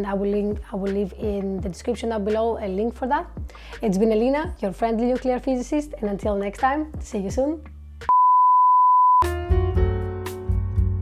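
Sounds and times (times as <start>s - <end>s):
electronic beep: 8.1s - 9.3s.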